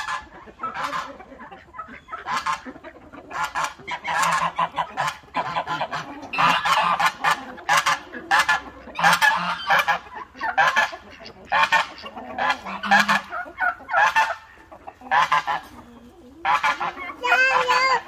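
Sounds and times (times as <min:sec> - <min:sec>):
geese honking: 0:00.0 - 0:18.0.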